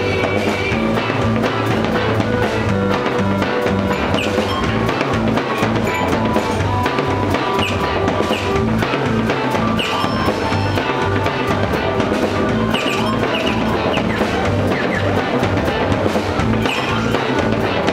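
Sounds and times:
drum kit beat: 0.0 - 17.9
live band playing: 0.0 - 17.9.

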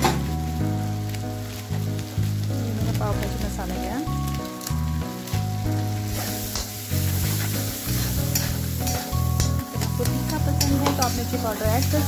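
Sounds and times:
background music: 0.0 - 12.0
food sizzling in oil: 0.0 - 12.0
spatula scraping a pan: 6.0 - 12.0.

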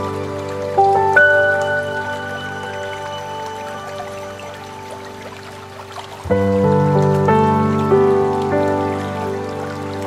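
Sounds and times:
slow ambient piano music: 0.0 - 10.0
waterfall rushing: 0.0 - 10.0.

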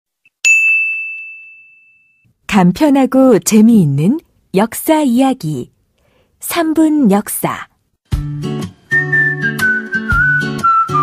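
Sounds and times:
small bell ding: 0.4 - 2.3.

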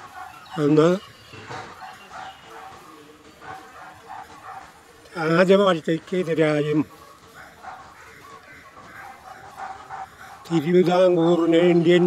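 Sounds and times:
faint animal calls: 0.0 - 4.9, 6.8 - 12.0.

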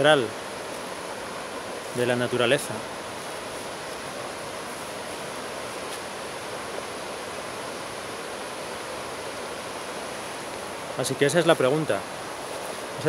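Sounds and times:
steady outdoor rushing noise: 0.0 - 13.0.

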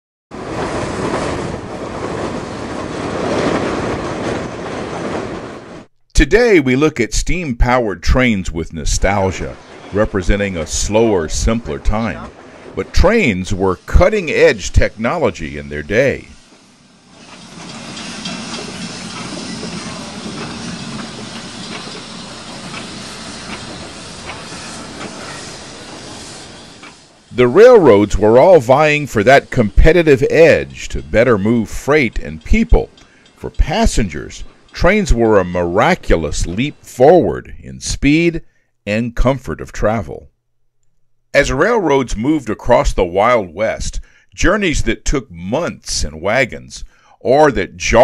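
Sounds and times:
train rail noise: 0.3 - 37.3
steam locomotive hiss: 8.0 - 37.0, 43.8 - 44.4, 46.8 - 47.3
faint clicks: 32.4 - 33.7.

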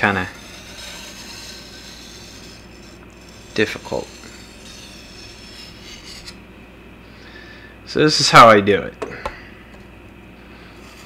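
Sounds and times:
blade scraping on whetstone: 0.0 - 6.4, 10.6 - 11.0.

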